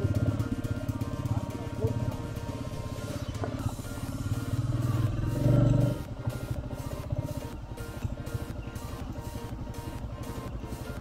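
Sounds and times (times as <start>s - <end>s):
background music: 0.0s - 11.0s
motorcycle engine running: 0.0s - 11.0s.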